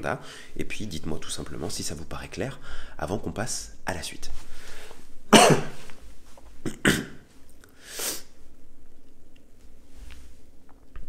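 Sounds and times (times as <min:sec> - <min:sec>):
man coughing: 0:05.3 - 0:05.9, 0:06.6 - 0:07.3.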